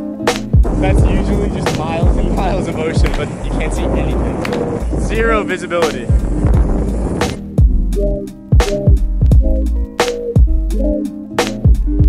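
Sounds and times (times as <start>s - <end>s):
music with kick-drum beat: 0.2s - 3.2s, 5.9s - 12.0s
longboard wheels on pavement: 0.6s - 7.5s
voices: 0.7s - 6.3s.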